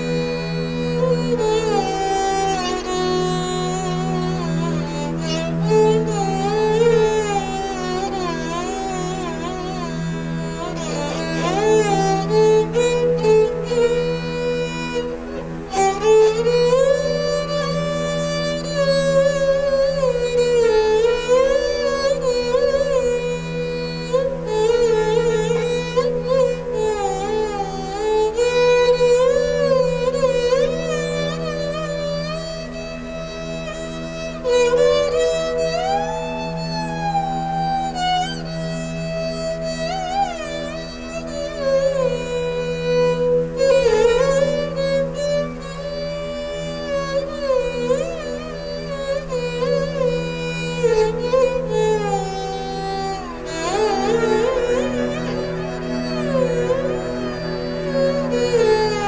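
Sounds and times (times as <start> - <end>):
bowed string instrument melody: 0.0 - 59.0.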